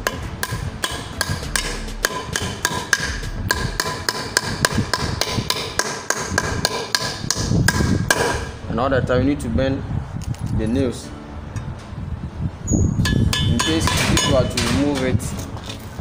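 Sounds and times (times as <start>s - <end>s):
hammer striking nails on metal: 0.0s - 8.5s, 13.0s - 15.1s.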